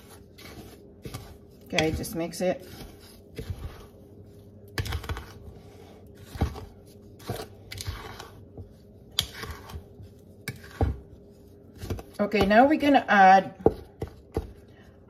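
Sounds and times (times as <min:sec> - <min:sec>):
spoon scraping through flour: 0:00.0 - 0:14.9.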